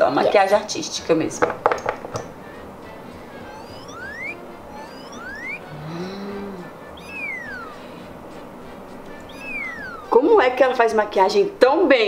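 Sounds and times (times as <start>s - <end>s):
cartoon whistles sliding: 3.4s - 8.1s, 9.1s - 10.2s
short low tone rising and falling: 3.5s - 6.0s, 6.9s - 8.0s, 9.3s - 10.1s.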